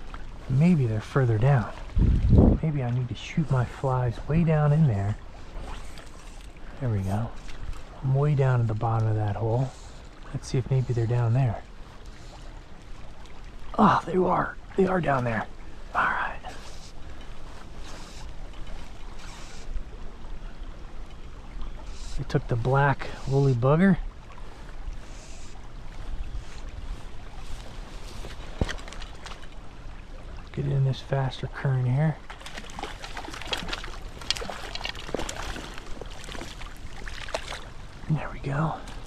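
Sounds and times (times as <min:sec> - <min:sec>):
wind rumbling on microphone: 0:00.0 - 0:06.0
stream rushing: 0:00.0 - 0:12.0, 0:12.8 - 0:17.9, 0:25.7 - 0:39.0
creek water: 0:00.0 - 0:39.0
fish thrashing and splashing water: 0:32.2 - 0:37.9.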